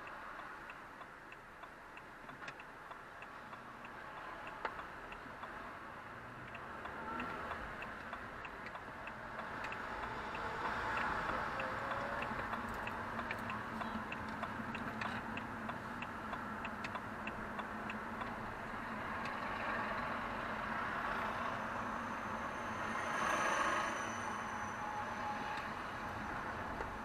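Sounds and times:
car engine and tyre noise: 0.0 - 27.0
turn signal ticking: 0.0 - 27.0.

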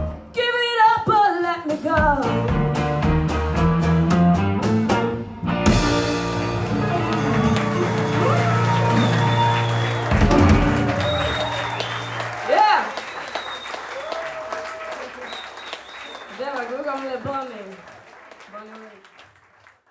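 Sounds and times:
live band holding final chord: 5.4 - 12.3
drum hit: 5.6 - 6.6, 10.1 - 11.4
audience applause: 6.2 - 19.9
voices over clapping: 6.6 - 19.8
person cheering: 6.7 - 15.4.

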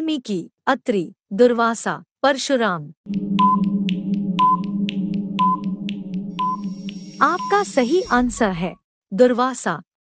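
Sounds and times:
timer ticking: 3.1 - 8.3
low electronic drone: 3.1 - 8.6
short beeps: 5.4 - 8.2.

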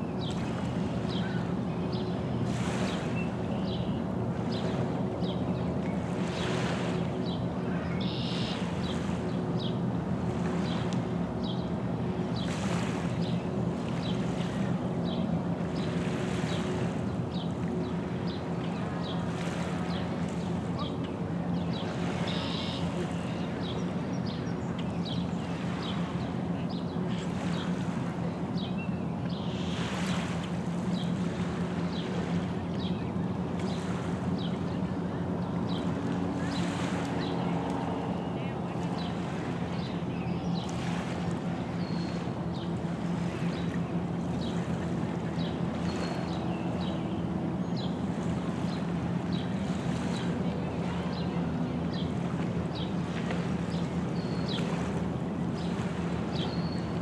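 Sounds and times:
waves lapping on stony shore: 0.0 - 9.4, 10.0 - 57.0
distant motor hum: 0.2 - 57.0.

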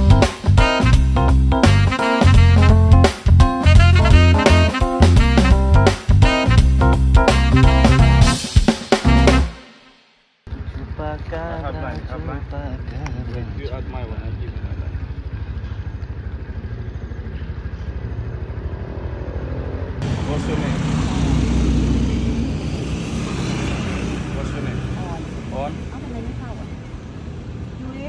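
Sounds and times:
street noise: 0.0 - 9.8, 10.4 - 28.0
people talking: 10.5 - 15.0, 20.0 - 21.0, 24.3 - 26.9
motorbike engine idling: 10.5 - 28.0.

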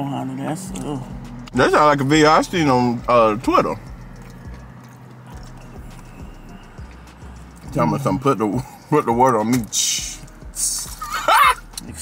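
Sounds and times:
low steady hum: 0.0 - 11.6
soft chewing: 3.8 - 7.7.

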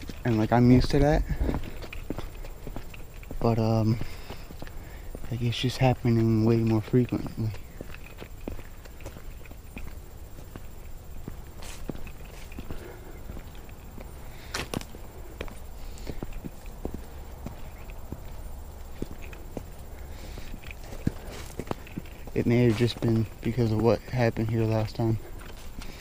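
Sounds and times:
footsteps through grass: 0.0 - 26.0.

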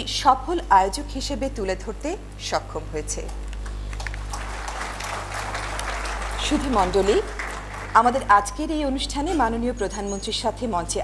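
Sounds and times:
audience applauding: 3.6 - 8.5.

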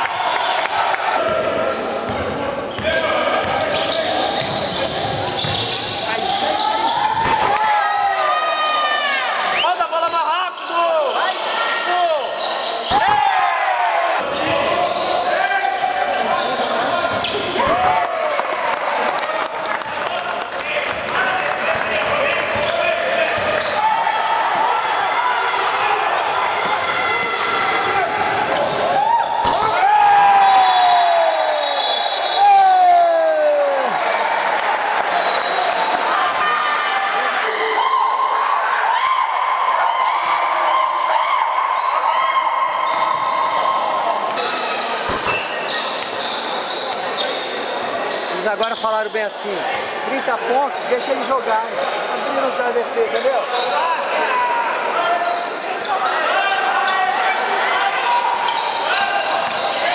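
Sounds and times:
echoing voices in a gym: 0.0 - 59.9
sneakers squeaking: 1.1 - 7.5, 9.4 - 13.2, 14.2 - 17.8, 20.4 - 23.9, 26.3 - 32.4, 41.1 - 54.1, 55.1 - 59.9
basketball bouncing on wooden court: 2.1 - 3.7, 4.4 - 6.0.

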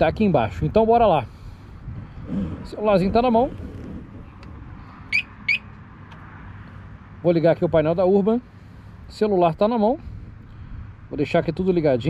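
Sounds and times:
outdoor background noise: 0.0 - 12.0
high bird chirps: 5.1 - 5.7.

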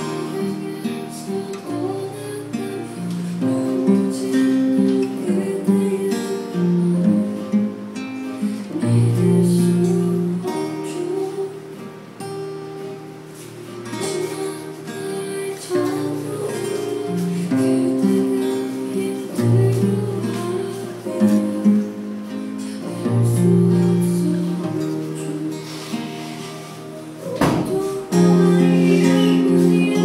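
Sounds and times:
fingerstyle acoustic guitar: 0.0 - 30.0.

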